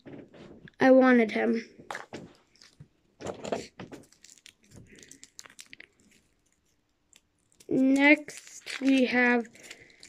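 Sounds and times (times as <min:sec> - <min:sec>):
plastic toy pieces clicking: 0:07.6 - 0:10.0.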